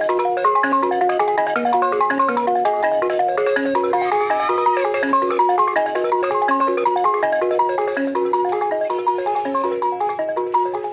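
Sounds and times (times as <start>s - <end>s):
wooden xylophones playing: 0.0s - 10.9s.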